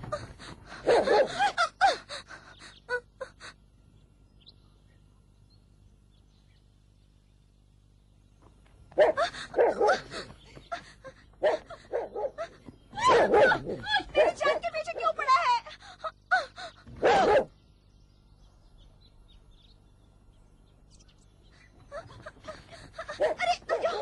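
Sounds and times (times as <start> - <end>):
dog barking: 0.8 - 1.5, 9.0 - 10.2, 11.4 - 15.2, 17.0 - 17.5, 23.0 - 24.0.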